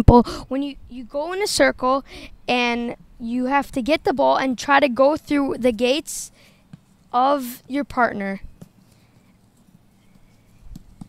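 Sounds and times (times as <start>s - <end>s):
light taps: 8.5s - 11.0s.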